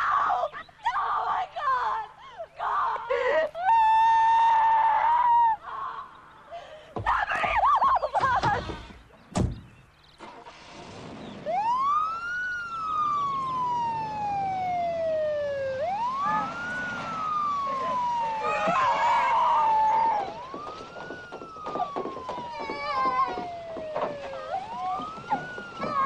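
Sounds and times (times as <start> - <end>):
police siren wailing: 11.4 - 26.0.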